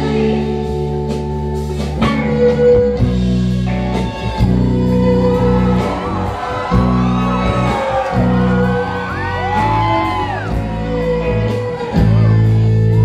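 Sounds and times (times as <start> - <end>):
bass: 0.0 - 13.0
bowed violin: 0.0 - 13.0
drums: 0.0 - 13.0
electric guitars: 0.0 - 13.0.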